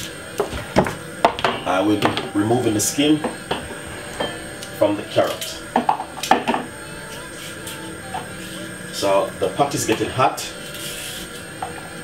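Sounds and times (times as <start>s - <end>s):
quiet music with held tones: 0.0s - 12.0s.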